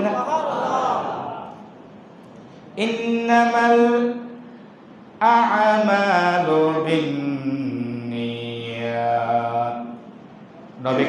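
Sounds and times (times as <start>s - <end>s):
man chanting a sermon: 2.8s - 4.4s, 5.2s - 10.1s, 10.8s - 11.0s.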